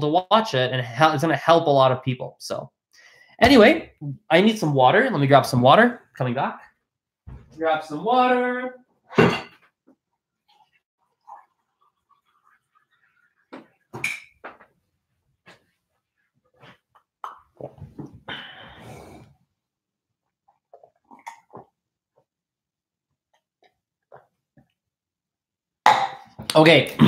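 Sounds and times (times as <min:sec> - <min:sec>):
kitchen knocks and clatter: 0:09.1 - 0:09.7.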